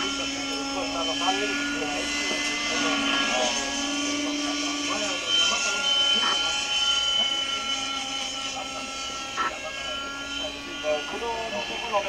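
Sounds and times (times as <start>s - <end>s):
model helicopter engine whine: 0.0s - 12.0s
voices: 0.0s - 12.0s.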